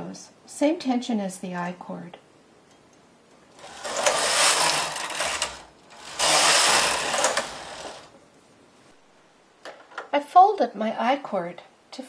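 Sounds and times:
knitting machine carriage rushing: 3.6 - 8.1.

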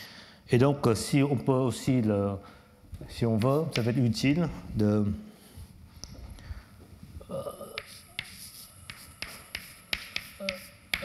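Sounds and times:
chalk tapping on blackboard: 3.4 - 4.2, 7.8 - 11.0.

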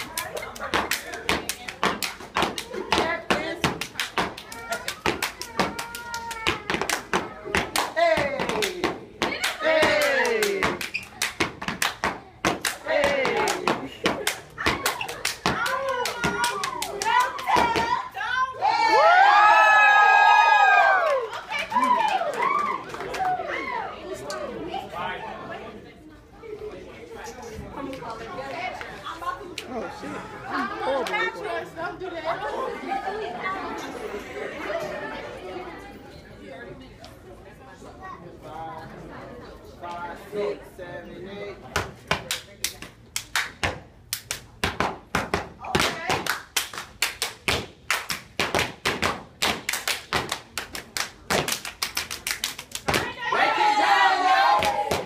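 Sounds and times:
people clapping: 0.0 - 18.0, 18.9 - 23.5, 42.2 - 55.0
chatter of many voices: 0.0 - 19.0, 21.2 - 46.3.

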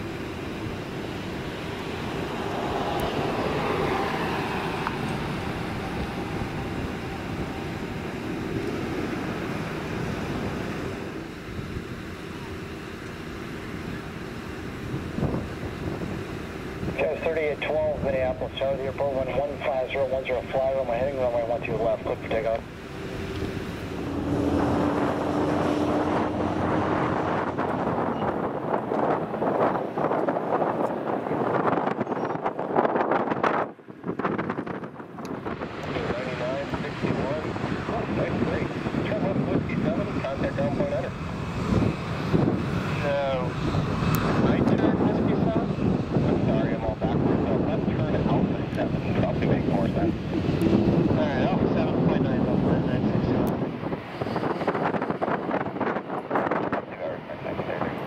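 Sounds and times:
jet airliners taxiing rumble: 0.0 - 58.0
wind buffeting microphone: 0.0 - 58.0.

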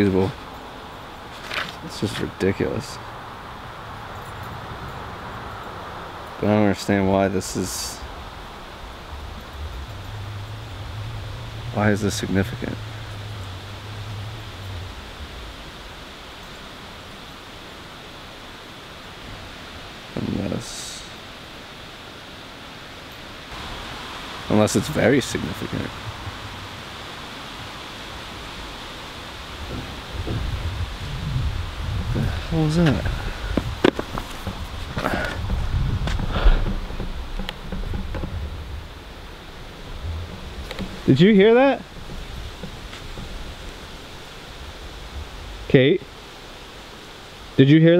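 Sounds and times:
wind rumble: 0.0 - 47.6
outdoor background hiss: 0.0 - 47.9
low hum: 7.4 - 19.4, 23.1 - 46.6
light knocks: 32.8 - 38.6, 41.9 - 43.7.

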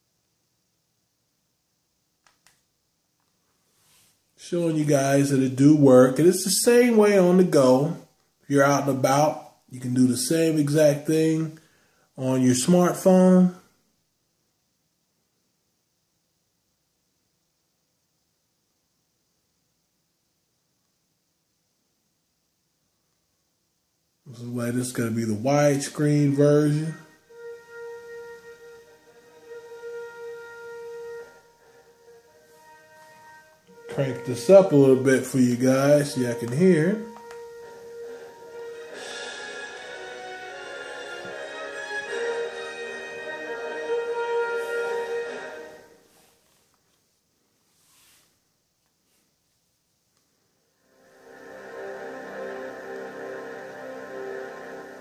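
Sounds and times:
faint held music note from tv: 24.3 - 46.7
orchestral fanfare: 26.2 - 46.0, 50.9 - 55.0.

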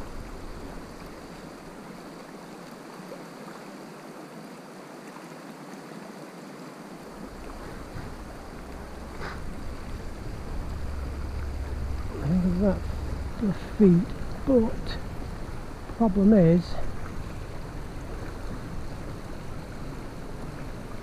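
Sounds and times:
low microphone rumble: 0.0 - 2.5, 7.0 - 21.0
river water running over stones: 0.0 - 21.0.

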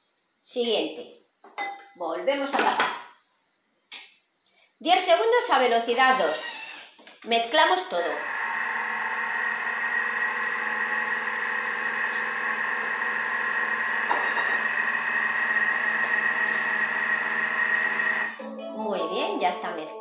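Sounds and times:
food processor motor whine: 8.2 - 18.4.

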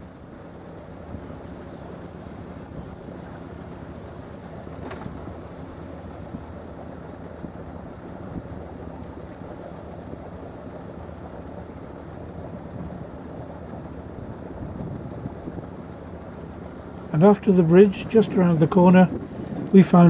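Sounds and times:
diesel engine running: 0.0 - 20.0
high-pitched pulsing chirr: 0.0 - 20.0.

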